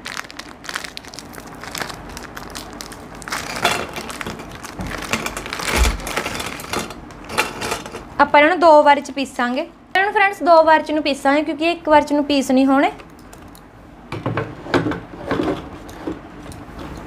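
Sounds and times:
biscuits snapping: 0.0s - 7.2s
plastic wrapper crinkling: 0.0s - 7.6s.

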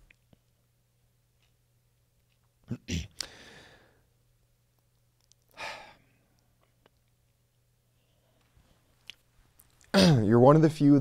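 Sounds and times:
man sighing: 3.0s - 4.0s, 5.5s - 6.1s.

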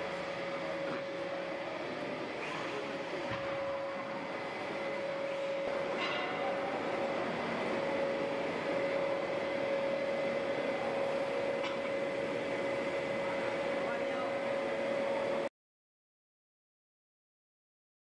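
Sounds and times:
machine drone: 0.0s - 15.5s
steady machine whine: 0.0s - 15.5s.

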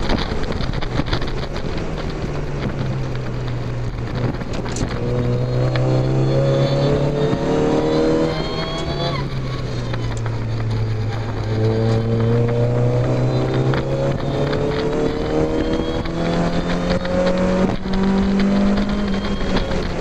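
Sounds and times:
car engine revving: 0.0s - 20.0s
wind and road noise: 0.0s - 20.0s.

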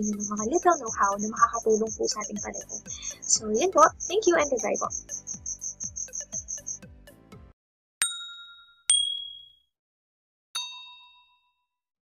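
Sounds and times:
bright ding chimes: 8.0s - 9.6s, 10.6s - 11.4s.

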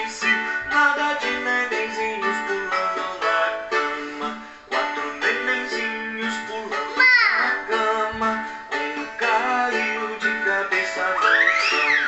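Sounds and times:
children's song with child singing: 0.0s - 12.0s
steep downward sliding tone: 11.1s - 12.0s.

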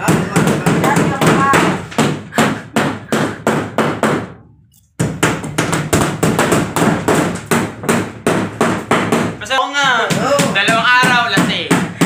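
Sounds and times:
hammer blows on plywood: 0.0s - 4.3s, 5.0s - 12.0s.

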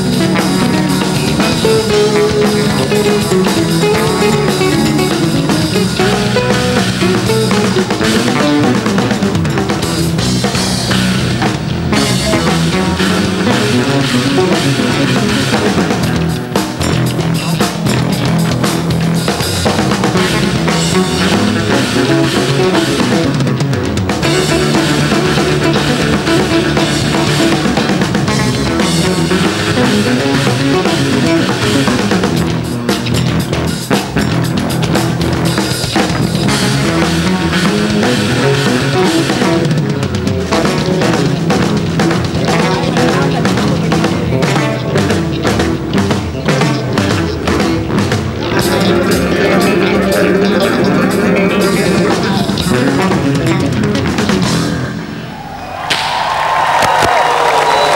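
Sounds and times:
drum kit: 0.0s - 57.9s
electric bass guitars playing: 0.0s - 57.9s.

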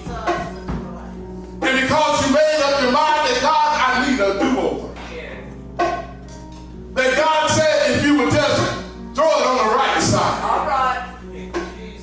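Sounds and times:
band playing softly: 0.0s - 12.0s.

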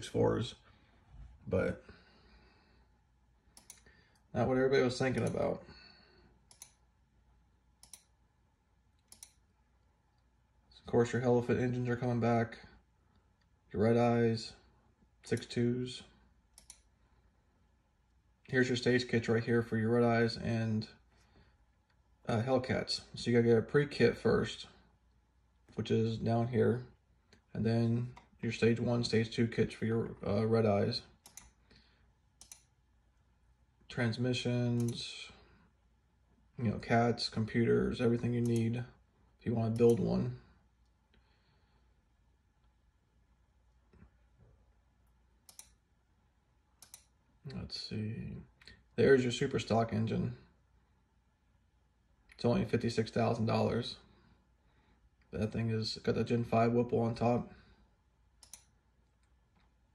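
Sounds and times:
computer mouse clicks: 3.5s - 4.3s, 5.1s - 5.5s, 6.4s - 6.8s, 7.8s - 8.2s, 9.0s - 9.5s, 16.5s - 17.0s, 31.2s - 31.6s, 32.4s - 32.8s, 38.4s - 38.7s, 45.4s - 45.8s, 46.8s - 47.2s, 58.4s - 59.8s.

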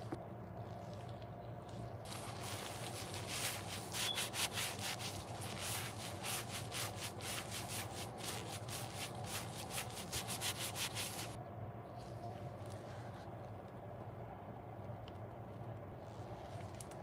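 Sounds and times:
sponge squeezed crackly squishes: 0.5s - 11.4s.

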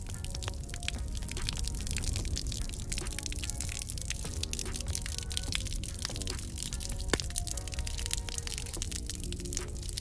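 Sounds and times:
onions frying in hot oil: 0.0s - 10.0s
soft background music: 0.0s - 10.0s.

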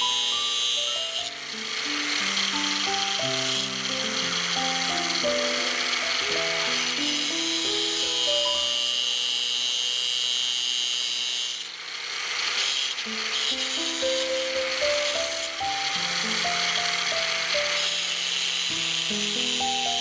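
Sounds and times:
angle grinder cutting metal: 0.0s - 20.0s.

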